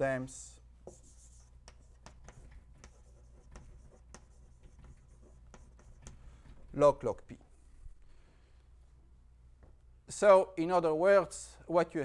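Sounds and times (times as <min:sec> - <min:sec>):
chalk on blackboard: 0:00.8 - 0:06.2.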